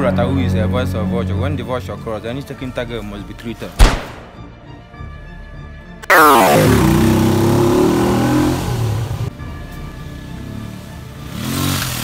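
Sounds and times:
motorcycle engine revving: 0:06.0 - 0:09.4, 0:10.3 - 0:12.0.

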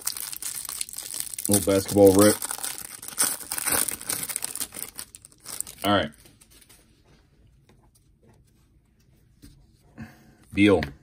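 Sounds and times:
foil wrapper crinkling: 0:00.0 - 0:06.0.

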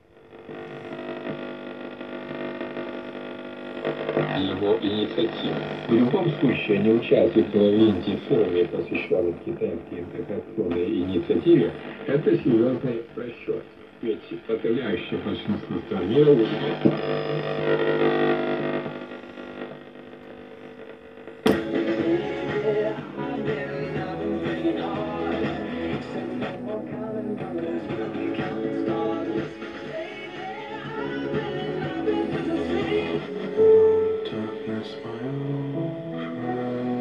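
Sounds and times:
radio buzzing hum: 0:00.0 - 0:37.0.

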